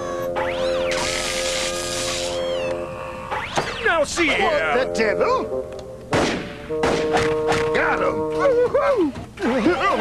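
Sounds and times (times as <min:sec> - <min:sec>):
sweeping tones: 0:00.0 - 0:08.7
cartoon background music: 0:00.0 - 0:10.0
rising and falling whistling glide: 0:00.4 - 0:03.9.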